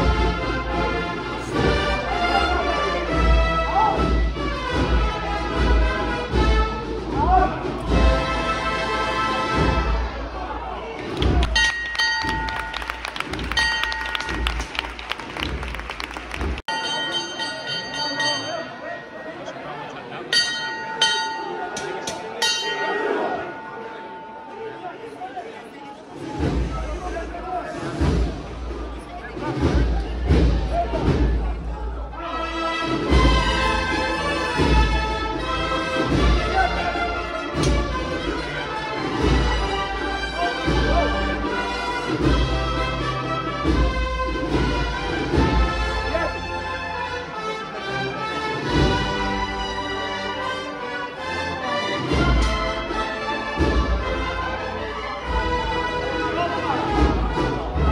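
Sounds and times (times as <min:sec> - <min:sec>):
procession band music: 0:00.0 - 0:10.5, 0:26.2 - 0:57.9
crowd voices: 0:00.0 - 0:57.9.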